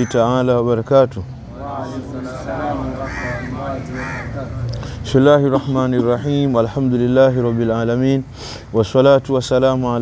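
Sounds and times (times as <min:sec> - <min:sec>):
bird calling: 0:01.8 - 0:04.9.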